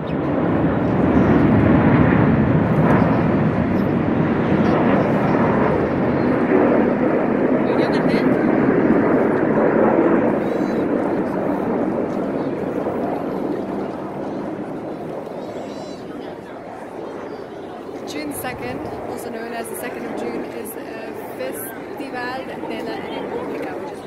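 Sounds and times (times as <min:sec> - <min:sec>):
jet engines roaring past: 0:00.0 - 0:24.0.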